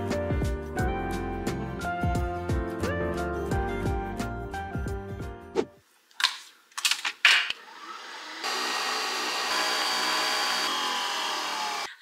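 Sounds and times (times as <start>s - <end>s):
background music: 0.0s - 5.8s
coffee machine motor whirring: 7.6s - 11.9s.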